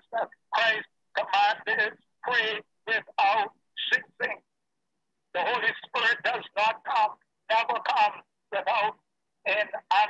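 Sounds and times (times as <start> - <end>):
person talking: 0.0 - 4.4, 5.3 - 10.0.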